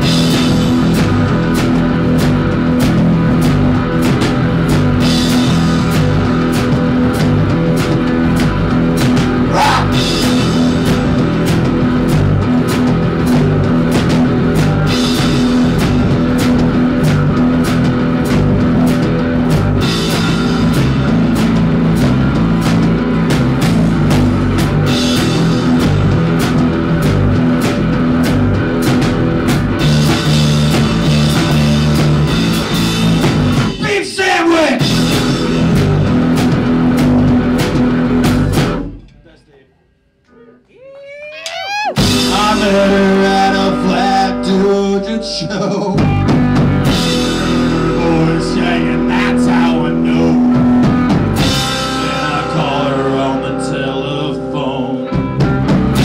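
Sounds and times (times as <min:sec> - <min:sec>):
distorted electric guitar: 0:00.0 - 0:34.0, 0:34.7 - 0:39.4, 0:41.5 - 0:56.0
electric bass: 0:00.0 - 0:39.4, 0:41.3 - 0:56.0
drum kit beat: 0:00.0 - 0:39.7, 0:41.4 - 0:56.0.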